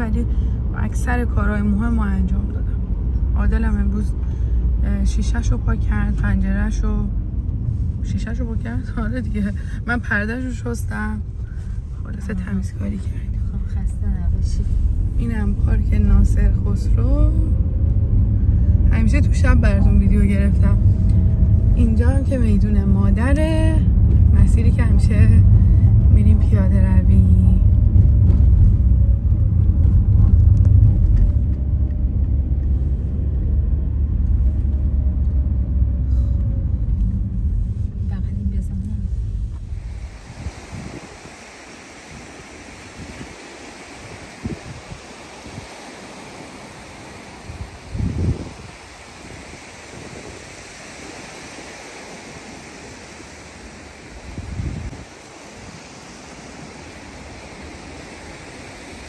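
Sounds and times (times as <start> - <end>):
car road and engine rumble: 0.0 - 59.0
low thumps: 11.1 - 41.2
sea surf on beach: 39.2 - 59.0.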